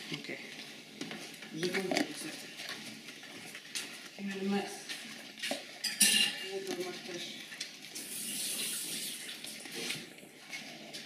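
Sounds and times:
dog eating: 0.0s - 11.0s
dish clinking and scraping: 5.5s - 7.3s.

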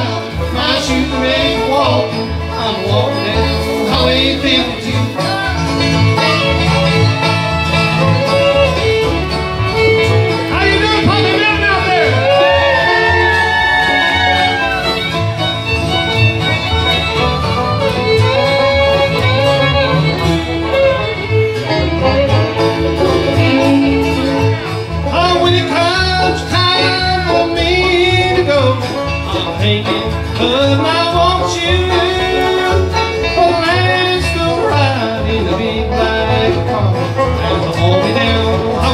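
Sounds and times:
acoustic guitars: 0.0s - 38.9s
banjo picking: 0.0s - 38.9s.

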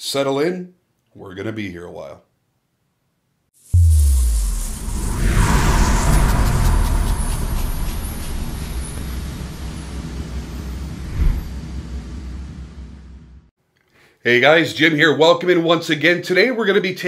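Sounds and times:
whoosh: 3.7s - 12.5s
deep fiery explosion rumble: 3.8s - 11.6s.

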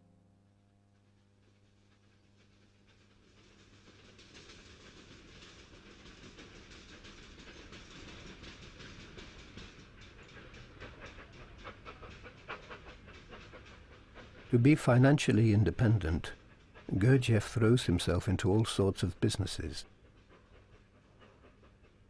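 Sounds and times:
rhythmic wheel clatter: 1.0s - 22.0s
train rumbling on tracks: 1.8s - 22.0s.

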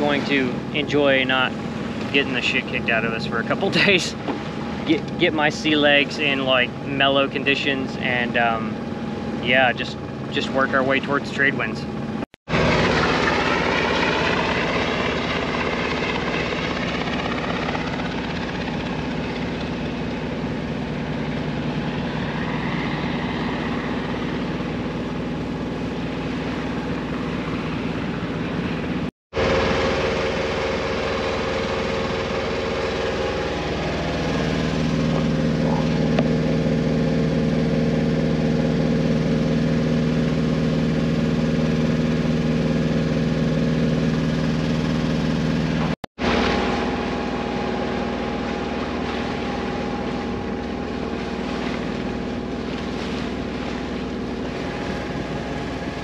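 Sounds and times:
boat engine drone: 0.0s - 56.0s
helicopter passing overhead: 0.0s - 56.0s.

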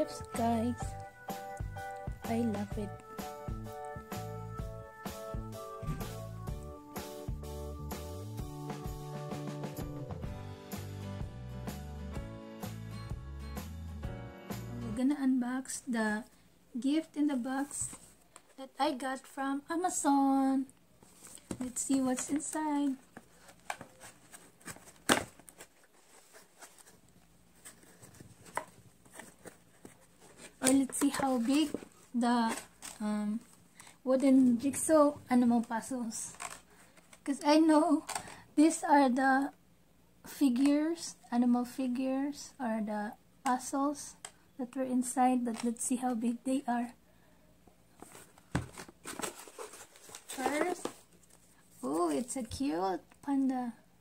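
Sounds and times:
handling cardboard box: 21.0s - 33.0s, 48.0s - 52.4s.

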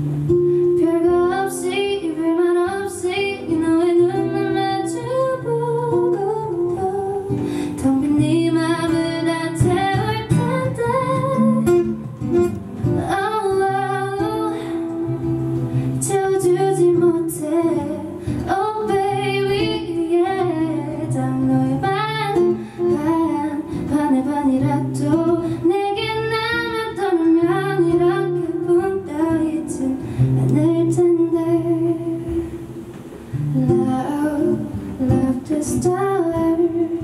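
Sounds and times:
soft guitar accompaniment: 0.0s - 37.0s
woman singing into microphone: 0.6s - 37.0s.

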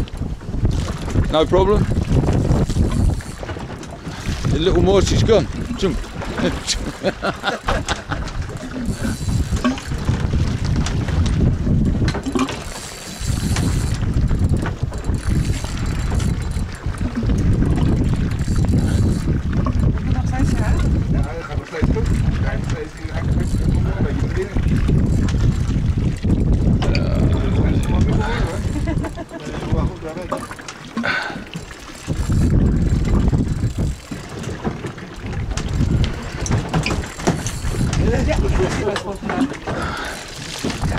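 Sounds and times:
boat at sea: 0.0s - 40.9s
wind buffeting microphone: 0.0s - 40.9s.

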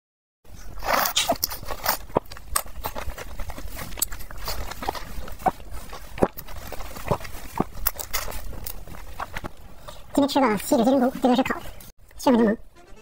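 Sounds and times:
mouth eating sounds: 0.5s - 10.0s.

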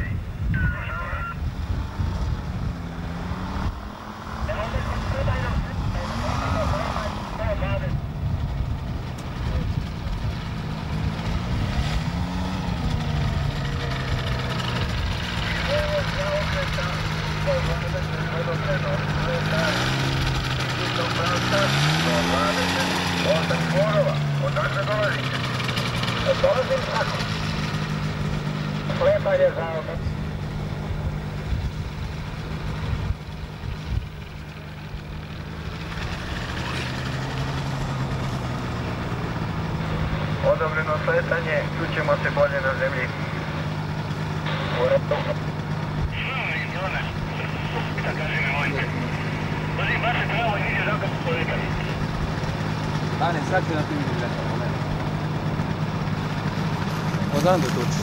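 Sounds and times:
small engine revving: 1.6s - 58.0s.

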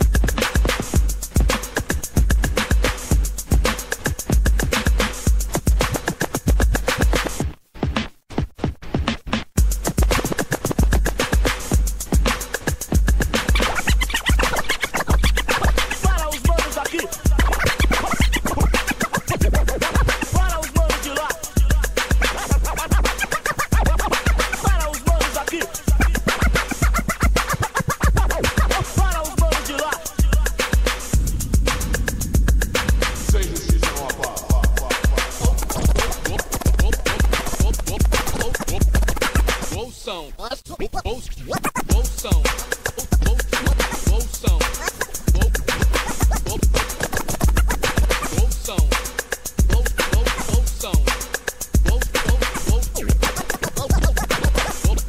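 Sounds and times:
driving beat with kick drum: 0.0s - 40.0s, 41.6s - 55.0s
vinyl scratching on turntable: 0.0s - 55.0s.

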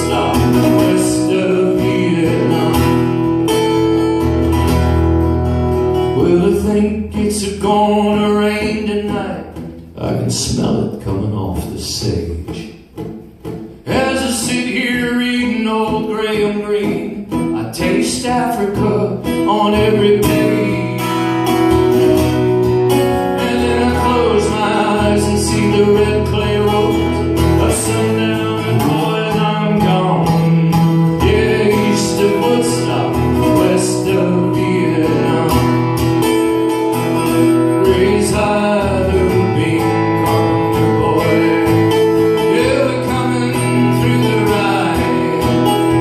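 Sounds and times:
acoustic guitar strummed and picked: 0.0s - 46.0s.

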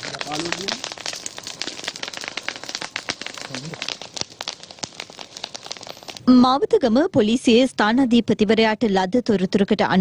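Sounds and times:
dense irregular crackling: 0.0s - 7.6s.

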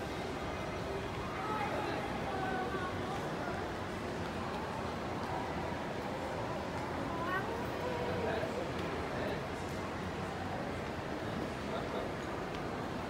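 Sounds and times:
shopping mall background noise: 0.0s - 13.0s.

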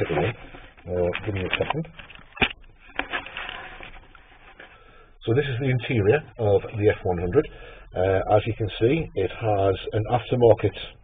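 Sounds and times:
rubbing and scuffing: 2.9s - 4.8s.

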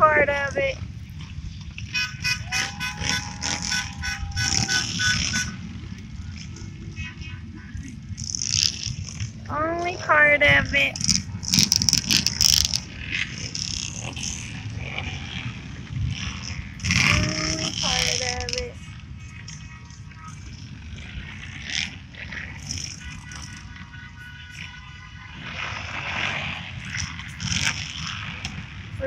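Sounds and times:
trucks driving past: 0.0s - 29.0s
brief loud tone: 2.0s - 5.6s.

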